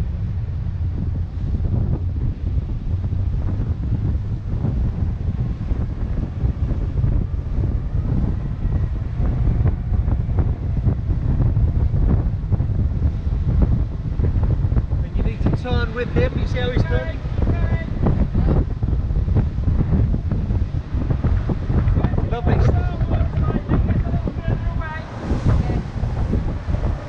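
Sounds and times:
wind buffeting microphone: 0:00.0 - 0:27.0
water splashing against hull: 0:00.2 - 0:27.0.

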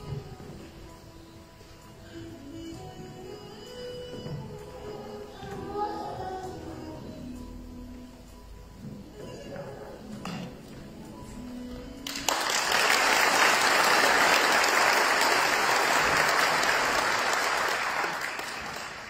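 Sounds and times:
quiet background music: 0:00.0 - 0:15.6
audience applauding: 0:12.0 - 0:19.0.

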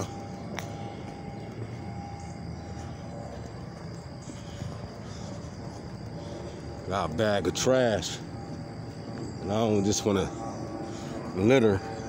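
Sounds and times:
distant engine drone: 0:00.0 - 0:12.0
faint hum tones: 0:00.0 - 0:12.0.

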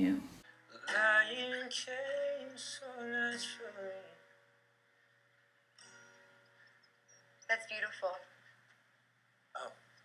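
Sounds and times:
acoustic guitar chord ringing: 0:00.7 - 0:08.5.

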